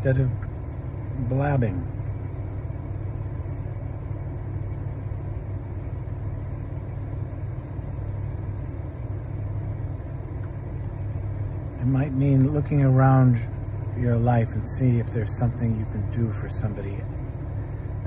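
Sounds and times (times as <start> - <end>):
car interior rumble: 0.0 - 18.0.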